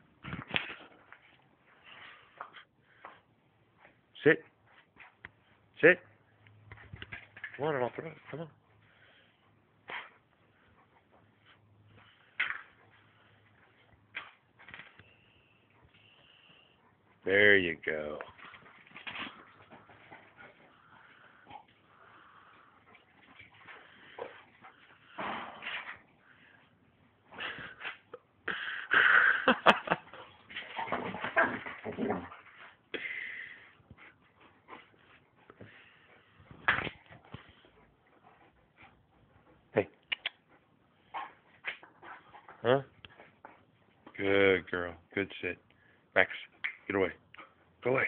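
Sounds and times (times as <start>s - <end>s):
dogs playing: 0.1s - 44.2s.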